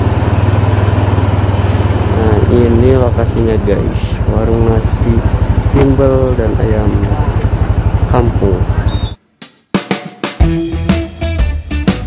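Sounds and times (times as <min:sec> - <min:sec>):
scooter engine idling: 0:00.0 - 0:09.2.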